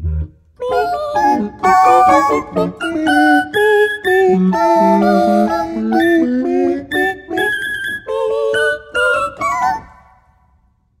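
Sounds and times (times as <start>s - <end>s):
keyboard playing vocal chords: 0.6s - 10.0s.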